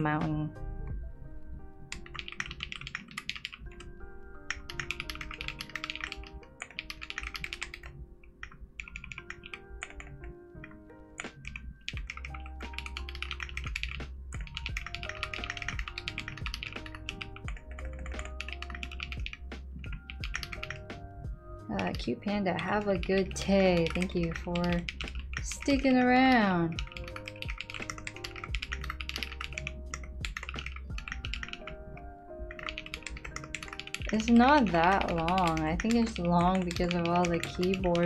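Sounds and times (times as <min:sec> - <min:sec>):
background music: 0:00.0 - 0:38.0
mechanical keyboard typing: 0:01.9 - 0:03.9, 0:04.5 - 0:20.9, 0:22.6 - 0:31.8, 0:32.5 - 0:38.0.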